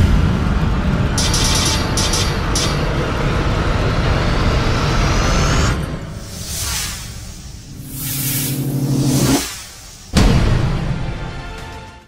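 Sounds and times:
rising sweep: 3.6s - 10.2s.

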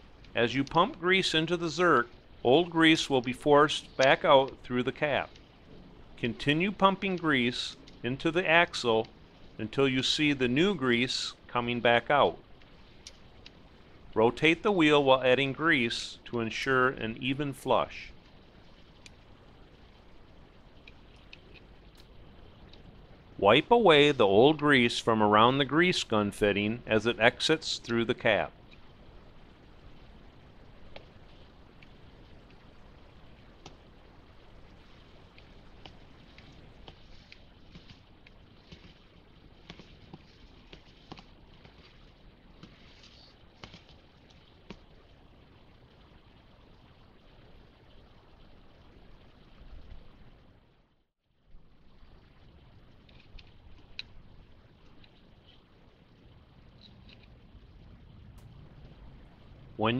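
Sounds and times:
faint background noise: 0.0s - 59.9s.

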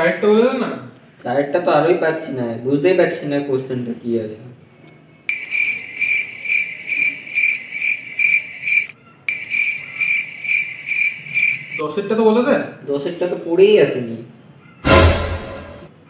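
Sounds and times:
cricket chirping: 5.3s - 11.8s.

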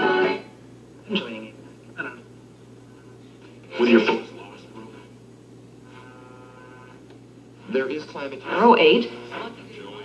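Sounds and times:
faint radio hiss: 0.0s - 10.0s
faint steady radio tones: 0.0s - 10.0s
radio hum: 0.0s - 10.0s.

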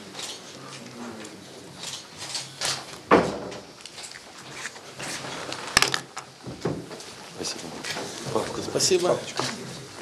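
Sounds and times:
solid thump: 3.1s - 3.7s
papers shuffling on a table: 3.9s - 6.3s.

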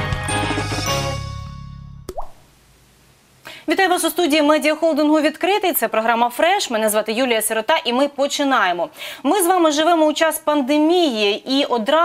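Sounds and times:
tv intro music: 0.0s - 2.3s
cartoon plop with rising pitch: 2.1s - 2.4s.

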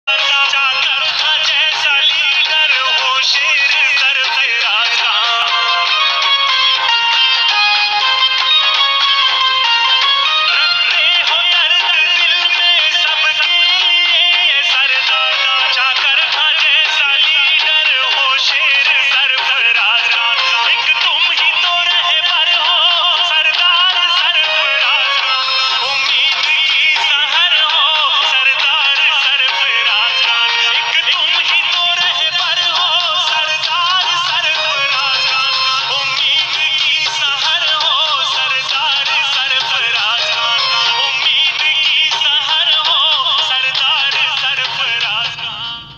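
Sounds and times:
instrumental backing: 0.1s - 45.9s
song with wavering vocals: 0.1s - 45.9s.

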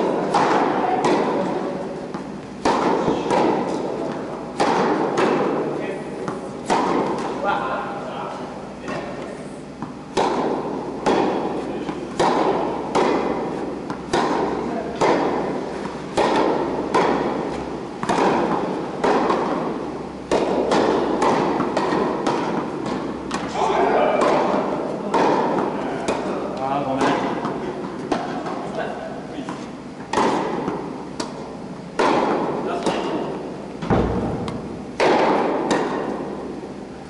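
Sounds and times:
tennis ball pops echoing: 0.2s - 5.6s, 6.2s - 7.4s, 8.8s - 28.8s, 29.4s - 36.6s.

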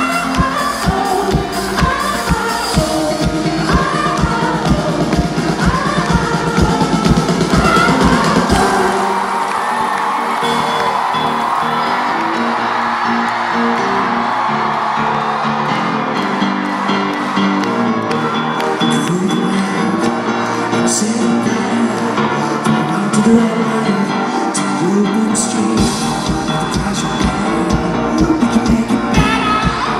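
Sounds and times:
held keyboard chords: 0.0s - 29.9s
crowd whooping: 7.2s - 22.0s.

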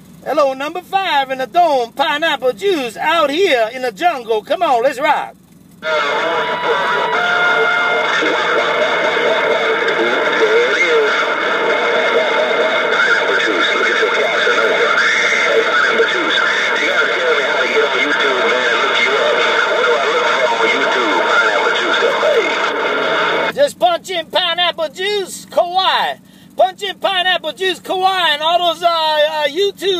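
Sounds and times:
garbled radio voices: 0.0s - 29.9s
radio static: 5.8s - 29.7s
clear radio voice: 5.8s - 29.9s.

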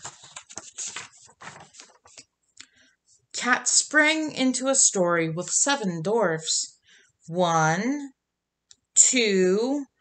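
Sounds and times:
book pages rustling: 0.0s - 2.4s.

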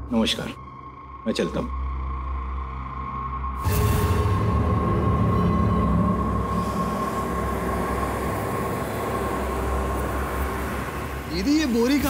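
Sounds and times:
steady high tone: 2.4s - 11.4s.

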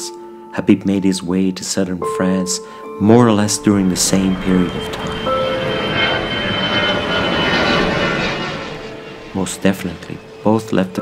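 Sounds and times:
high jet engine whine: 2.9s - 11.0s
jet airliner passing overhead: 2.9s - 11.0s.

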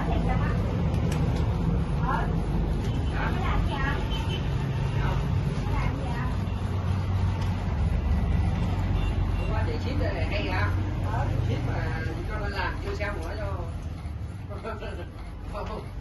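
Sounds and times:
inkjet printer motors droning: 0.0s - 16.0s.

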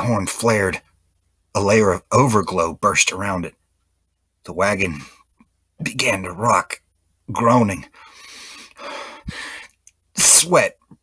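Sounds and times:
person breathing heavily: 7.9s - 9.8s.

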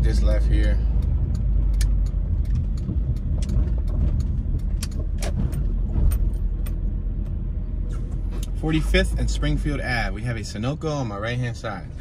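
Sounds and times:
car cabin rumble: 0.0s - 12.0s
small sharp clicks and rattles: 0.2s - 7.4s.

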